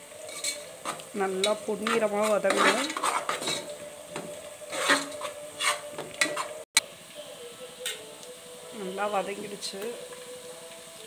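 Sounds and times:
onions frying in oil: 0.0 - 11.0
spatula scraping metal pot: 0.2 - 6.7.

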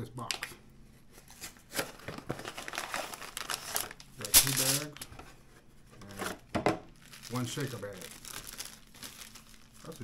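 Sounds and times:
plastic bags crinkling: 1.8 - 5.1, 6.9 - 10.0.

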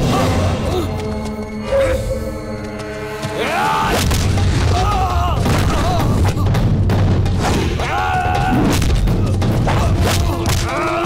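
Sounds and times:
booming action film score: 0.0 - 11.0.

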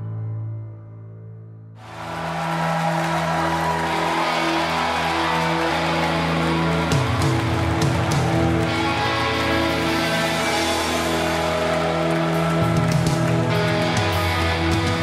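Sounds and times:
rock band playing: 1.8 - 15.0.

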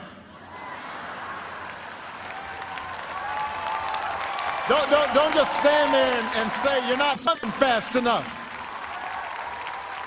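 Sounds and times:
audience applauding: 1.1 - 10.0.

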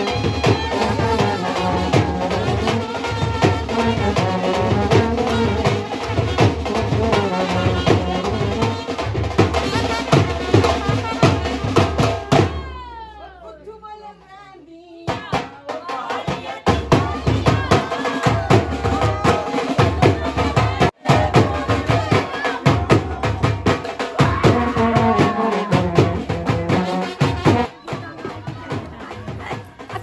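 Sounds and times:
trumpet and clarinet melody: 0.0 - 12.1, 24.5 - 27.8
dhol drum beat: 0.0 - 13.0, 15.0 - 30.0.

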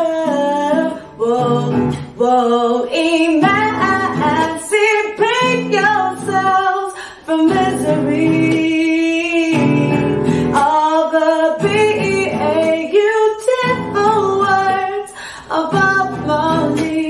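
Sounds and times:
nylon-string guitar strumming: 0.0 - 17.0
woman singing: 0.0 - 17.0.

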